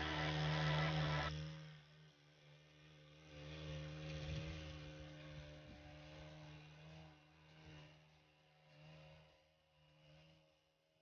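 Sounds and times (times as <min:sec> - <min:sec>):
faint engine running steadily: 0:00.0 - 0:11.0.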